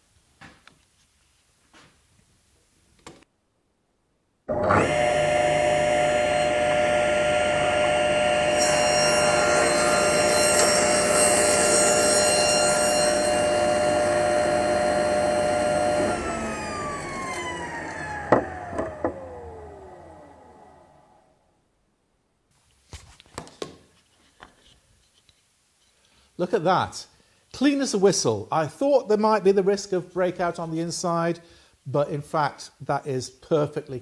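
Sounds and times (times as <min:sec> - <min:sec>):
saw cutting through wood: 0:04.5 - 0:20.6
table saw whining: 0:04.5 - 0:21.3.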